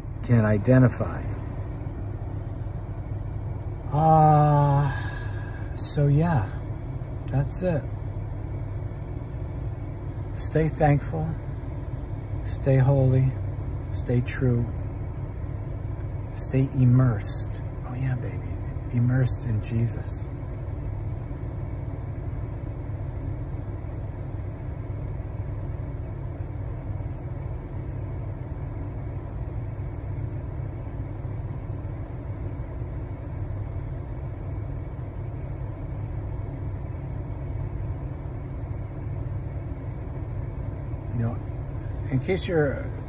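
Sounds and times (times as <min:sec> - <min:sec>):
car engine running: 0:00.0 - 0:43.0.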